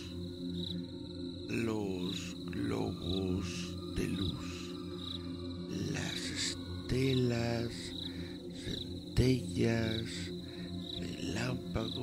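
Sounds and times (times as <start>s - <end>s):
crickets chirping: 0.0s - 12.0s
low musical drone: 0.0s - 12.0s.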